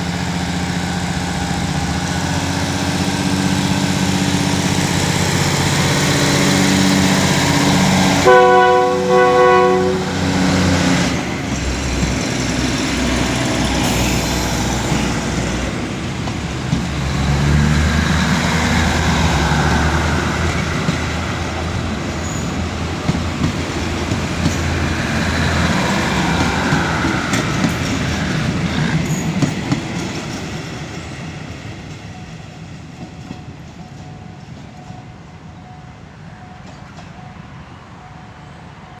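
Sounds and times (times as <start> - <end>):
train wheels clicking on rails: 0.0 - 35.6, 36.5 - 37.3
train horn blast: 7.4 - 11.1.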